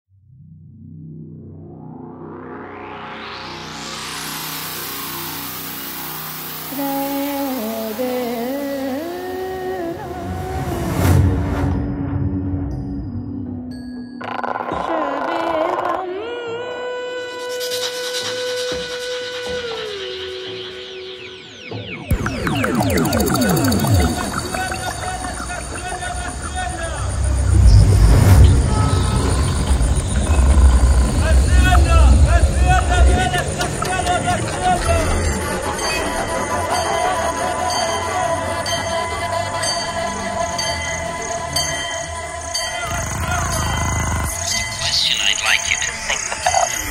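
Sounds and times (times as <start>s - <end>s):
rising noise sweep: 0.8s - 9.4s, 18.1s - 41.6s
gliding synth line: 1.3s - 11.2s, 17.6s - 46.9s
sustained low synth tones: 20.3s - 46.9s
deep pulsing bass: 22.1s - 37.8s
processed spoken voice sample: 22.2s - 27.5s, 31.1s - 35.7s, 42.8s - 46.9s.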